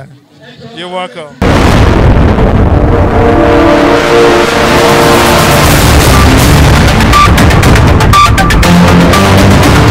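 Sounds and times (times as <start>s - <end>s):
held chord: 2.9s - 7.4s.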